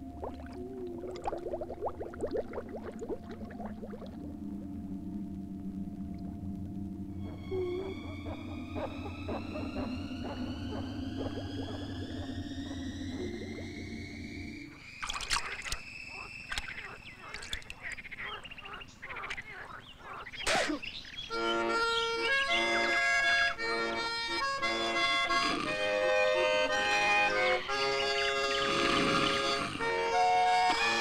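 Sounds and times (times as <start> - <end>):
low humming drone: 0.0 - 17.3
watery clicks and pops: 0.2 - 4.4, 15.0 - 18.2, 19.1 - 19.6
rising whistle-like tone: 6.2 - 16.8.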